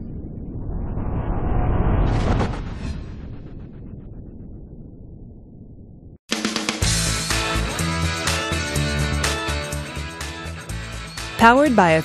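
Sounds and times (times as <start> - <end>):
rumbling build-up effect: 0.0 - 6.2.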